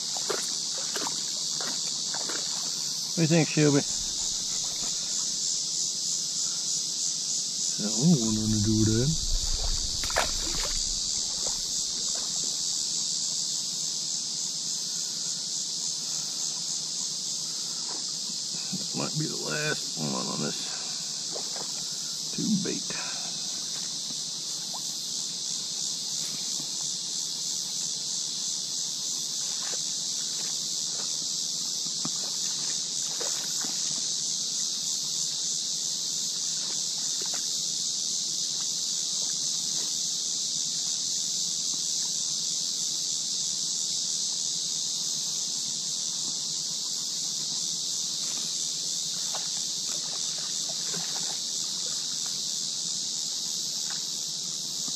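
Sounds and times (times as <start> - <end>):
cicadas droning: 0.0 - 54.9.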